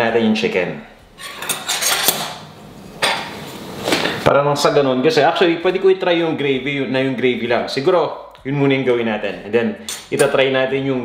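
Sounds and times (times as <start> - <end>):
knife and fork clinking: 1.2 - 2.4, 9.8 - 10.4.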